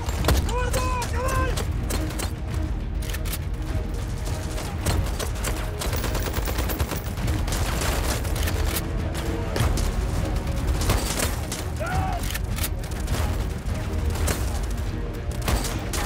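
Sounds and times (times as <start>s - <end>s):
rifle and machine-gun fire: 4.2s - 8.8s.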